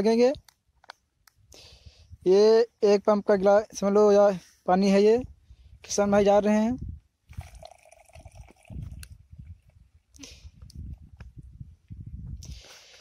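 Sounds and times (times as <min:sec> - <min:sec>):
liquid pouring into plastic tank: 0:07.3 - 0:09.1.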